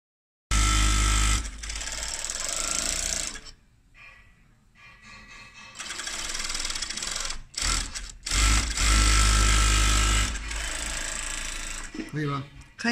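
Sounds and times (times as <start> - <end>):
sewing machine rattling: 0.5 - 3.5, 5.8 - 12.2.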